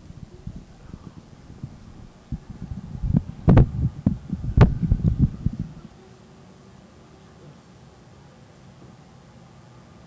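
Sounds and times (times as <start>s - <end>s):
microphone handling thumps: 0.0s - 5.8s.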